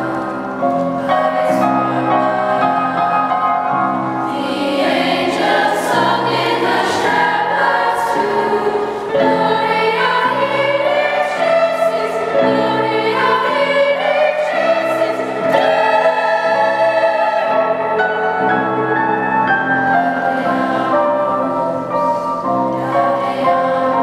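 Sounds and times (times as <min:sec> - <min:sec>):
girls' choir singing: 0:00.0 - 0:24.0
held accompanying notes: 0:00.0 - 0:24.0.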